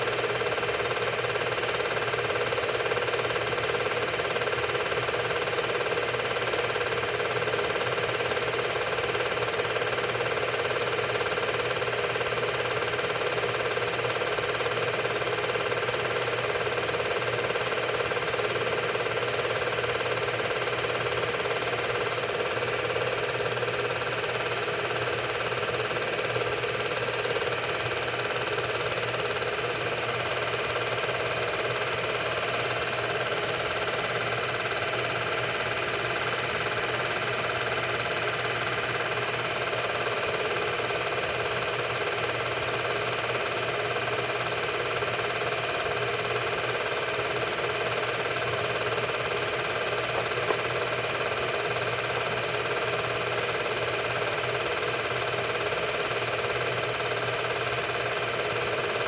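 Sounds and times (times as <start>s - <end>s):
film projector whirring: 0.0s - 59.0s.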